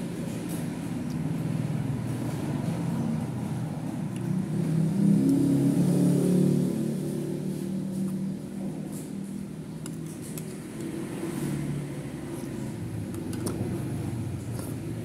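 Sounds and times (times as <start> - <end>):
low hum of traffic: 0.0 - 15.0.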